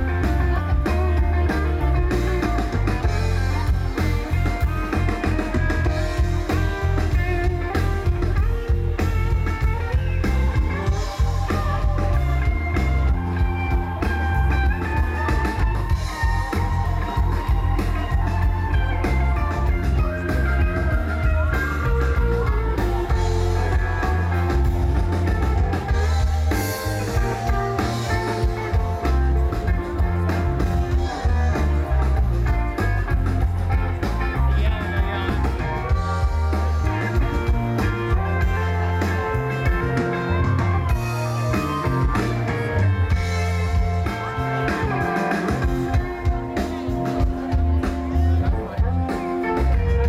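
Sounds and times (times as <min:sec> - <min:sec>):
drum kit: 0:00.0 - 0:50.0
electric bass: 0:00.0 - 0:50.0
electric guitar: 0:00.0 - 0:50.0
keyboards: 0:00.0 - 0:50.0.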